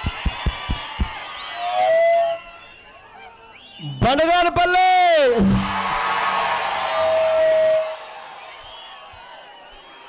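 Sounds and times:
large crowd cheering and whooping: 0.0 - 3.9, 5.2 - 10.0
steady tone: 5.4 - 6.0.

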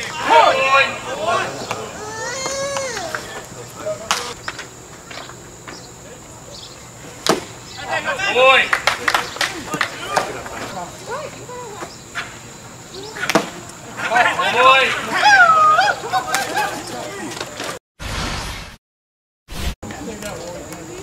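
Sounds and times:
crowd calls and chatter: 0.0 - 17.8, 19.8 - 21.0.

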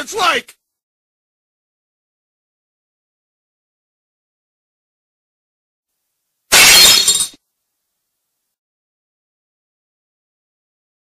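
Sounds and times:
cartoon glass shattering: 6.5 - 7.4.

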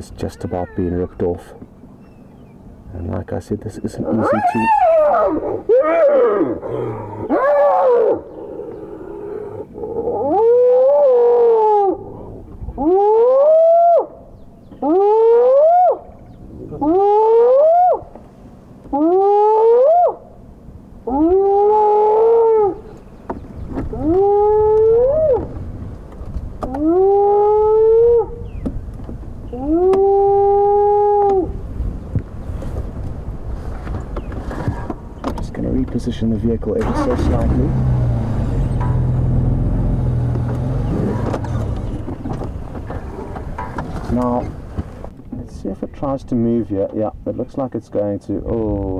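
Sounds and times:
low vehicle rumble: 0.0 - 46.6
overlapping hyena cries: 0.2 - 1.2, 4.0 - 12.2, 12.8 - 14.2, 14.8 - 16.1, 16.7 - 18.1, 18.9 - 20.2, 21.1 - 22.9, 23.9 - 25.6, 26.7 - 28.4, 29.5 - 31.6
hyena whooping calls: 4.0 - 12.1, 12.8 - 14.2, 14.8 - 16.2, 16.8 - 18.1, 18.9 - 20.3, 21.1 - 22.9, 23.9 - 25.6, 26.8 - 28.5.

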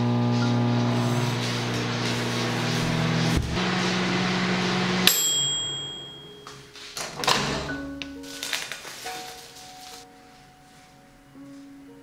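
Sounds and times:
microwave oven humming: 0.0 - 6.3
microwave bell ding: 5.0 - 6.7.

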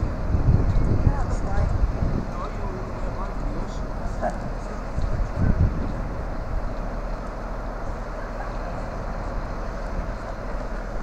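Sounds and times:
train diesel engine rumble: 0.0 - 11.0.

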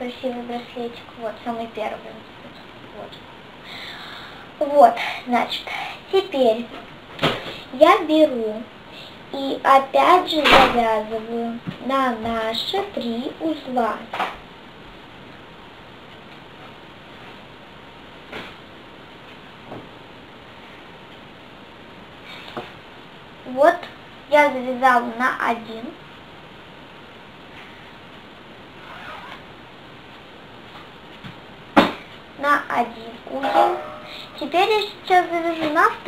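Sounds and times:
room hiss: 0.0 - 36.0.

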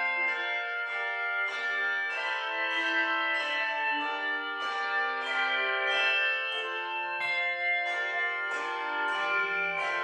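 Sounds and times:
handbell choir playing chords: 0.0 - 10.0.

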